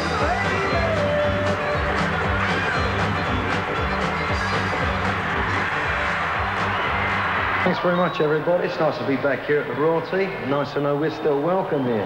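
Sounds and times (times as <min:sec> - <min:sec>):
rockabilly band playing: 0:00.0 - 0:07.6.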